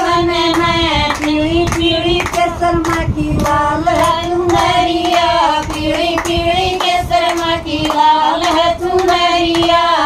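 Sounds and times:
hands clapping in rhythm: 0.0s - 10.0s
women singing: 0.0s - 10.0s.

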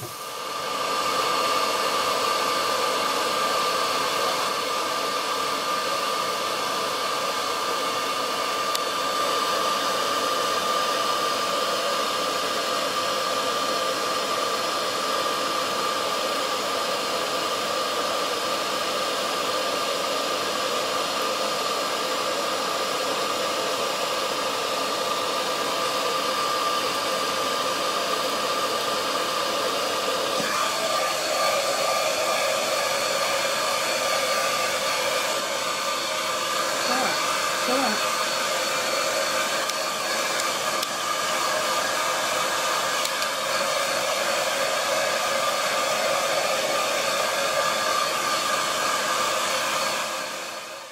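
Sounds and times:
hair dryer running: 0.0s - 50.9s.

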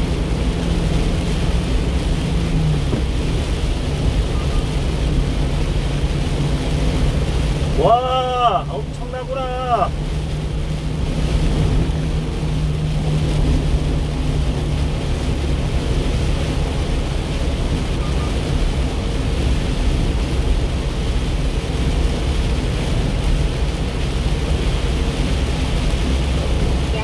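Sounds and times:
low engine drone: 0.0s - 27.0s
rain on vehicle body: 0.0s - 27.0s.

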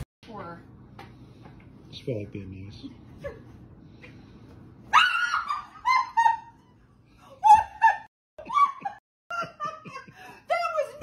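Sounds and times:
woman screaming: 4.9s - 6.4s.

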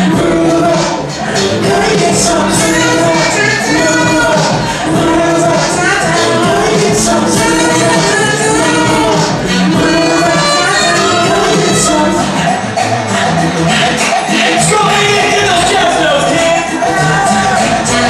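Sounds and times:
jazz-funk band playing: 0.0s - 18.0s
keyboards: 0.0s - 18.0s.

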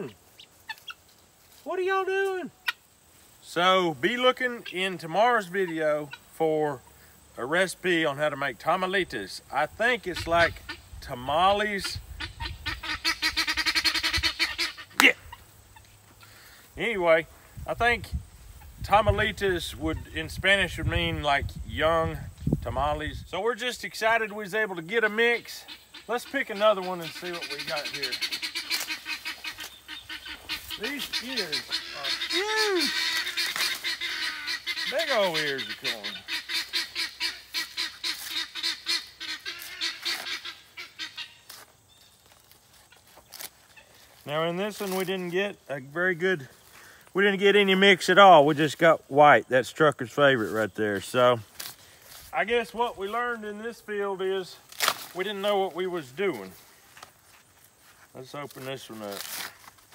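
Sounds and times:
fowl calling rattling notes: 0.0s - 6.3s, 10.0s - 10.9s, 11.6s - 16.6s, 25.0s - 41.6s
corn husk rustle: 0.0s - 12.2s, 12.8s - 59.9s.

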